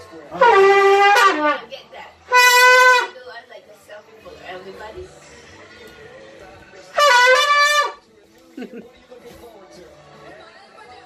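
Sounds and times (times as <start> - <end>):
horn blast: 2.3 - 3.2, 6.9 - 8.0.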